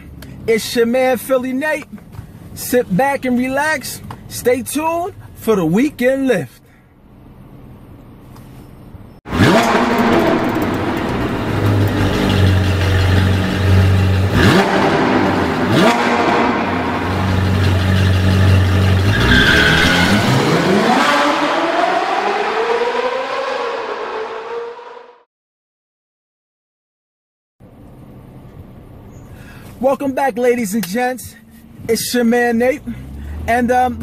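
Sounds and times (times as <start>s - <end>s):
sports car engine revving: 9.3s - 25.1s.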